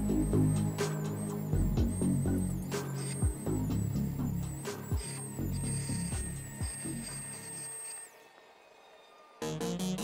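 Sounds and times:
background music with low beat: 0.0s - 7.5s
rotary tool cutting whine: 0.0s - 9.3s.

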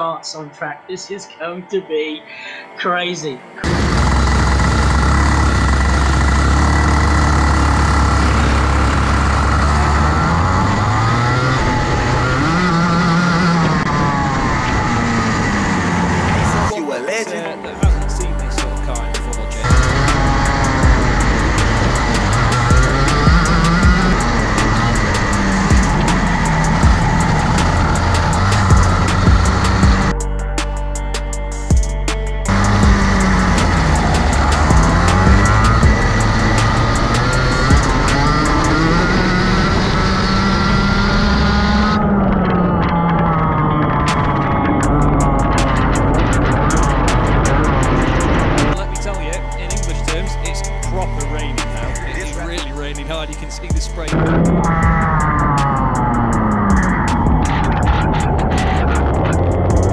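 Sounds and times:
background music: 0.0s - 59.9s
racing kart engines: 3.6s - 30.2s, 32.5s - 59.9s.

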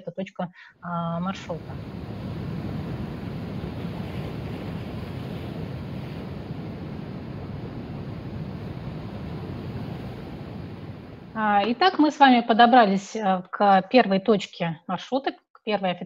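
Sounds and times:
waves breaking over rocks: 1.3s - 11.9s.

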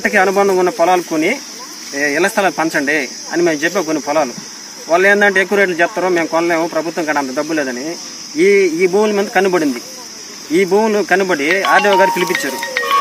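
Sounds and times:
high-pitched insect drone: 0.0s - 13.0s
man talking: 10.5s - 12.8s.

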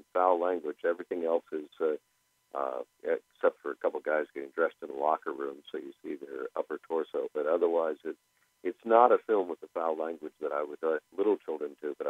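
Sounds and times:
person talking over radio: 0.2s - 2.0s, 2.6s - 8.1s, 8.7s - 12.0s.

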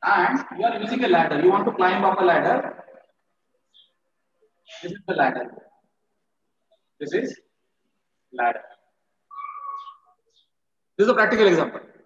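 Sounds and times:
marker squeaking on whiteboard: 9.3s - 10.6s.

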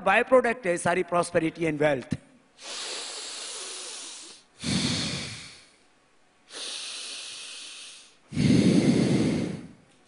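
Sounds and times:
breath hissing through nostril: 2.6s - 5.8s, 6.5s - 9.9s.

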